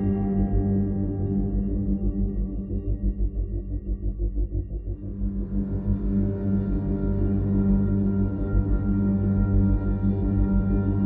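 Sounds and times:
eerie ambient drone music: 0.0 - 11.0.

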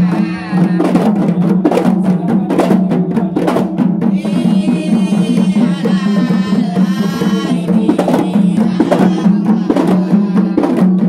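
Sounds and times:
frame drums beaten by hand: 0.0 - 11.0.

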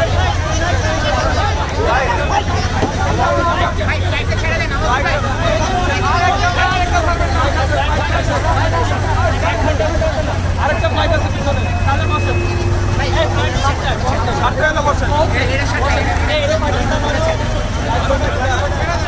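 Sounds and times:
crowd talking and calling out: 0.0 - 19.0.

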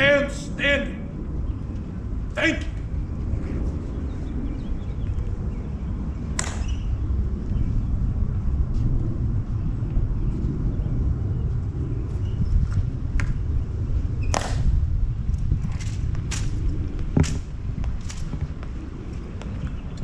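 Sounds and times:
wind rumble on microphone: 0.0 - 20.0.

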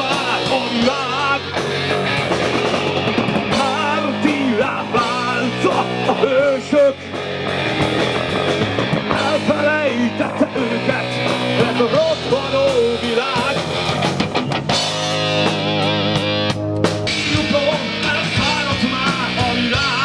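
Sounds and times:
bass and drums: 0.0 - 20.0
distorted electric guitar: 0.0 - 20.0.

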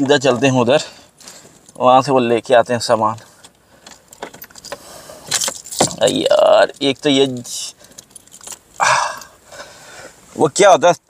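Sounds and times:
car keys jingling: 0.0 - 9.5.

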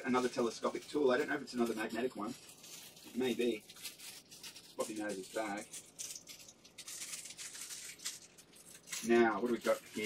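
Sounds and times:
packaging bag crinkling: 0.0 - 10.0.

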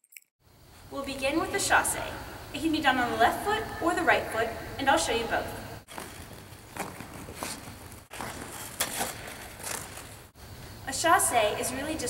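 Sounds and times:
skate blades scraping ice: 5.9 - 10.3.

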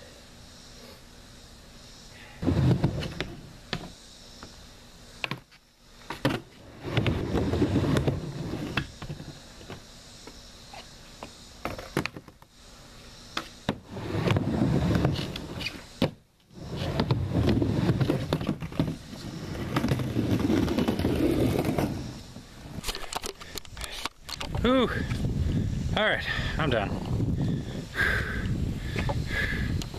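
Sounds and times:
skateboard wheels rolling on ramp: 2.4 - 3.9, 5.2 - 9.8, 13.4 - 22.9.

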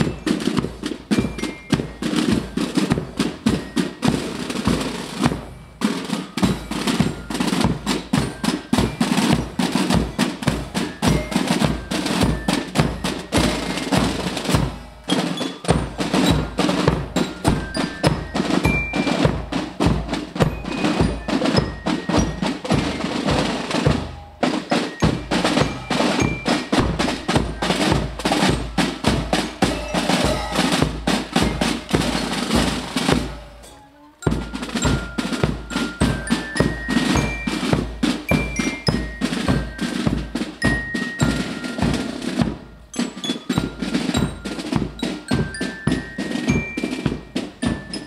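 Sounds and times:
high bell-like melody: 0.0 - 48.0
snare drums marching beat: 0.0 - 48.0.

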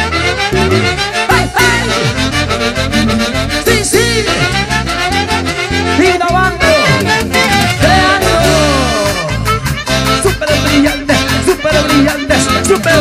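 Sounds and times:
brass and saxophone lines: 0.0 - 13.0
steady drum beat: 0.5 - 4.6.

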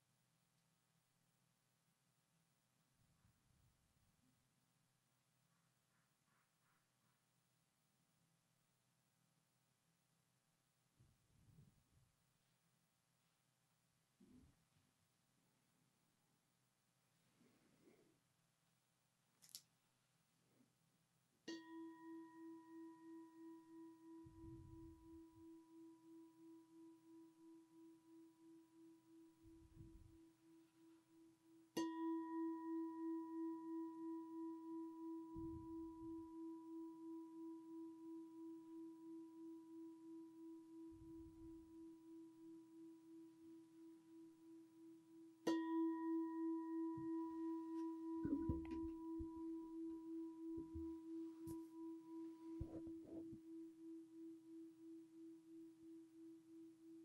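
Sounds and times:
soft low thumps: 48.2 - 49.4.

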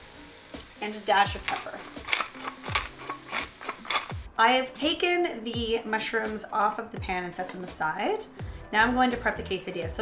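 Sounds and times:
background music with steady beat: 0.0 - 4.4, 5.5 - 10.0
pepper mill grinding: 0.5 - 4.3.

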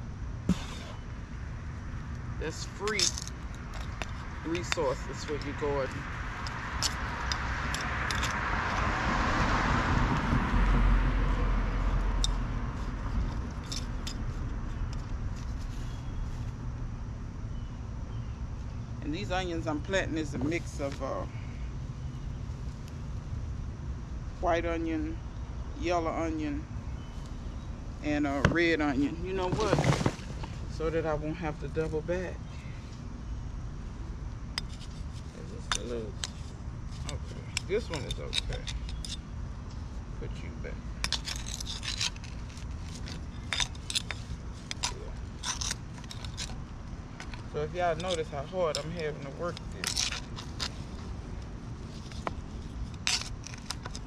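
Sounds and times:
metal trowel clinking: 2.5 - 8.4, 37.0 - 39.2, 47.2 - 50.8
wind rumble on microphone: 3.9 - 13.8
car driving past: 7.4 - 12.8.

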